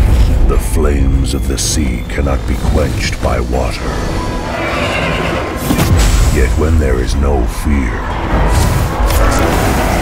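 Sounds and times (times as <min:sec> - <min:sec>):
dramatic orchestral score: 0:00.0 - 0:10.0
horse whinnying: 0:04.3 - 0:05.7.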